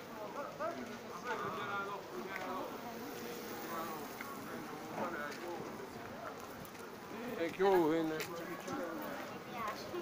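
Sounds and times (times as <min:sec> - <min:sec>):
street noise: 0:00.0 - 0:10.0.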